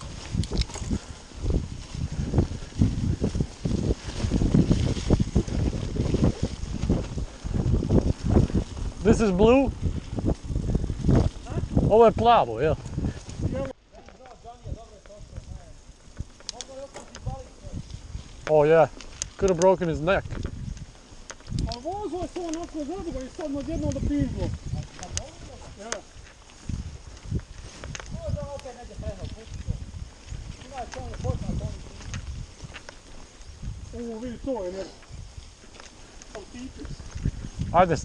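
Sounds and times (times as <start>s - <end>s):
bike rattling clicks and knocks: 0.0s - 12.1s, 12.8s - 38.0s
bike tyres on dirt trail: 0.0s - 38.0s
wind noise: 0.0s - 38.0s.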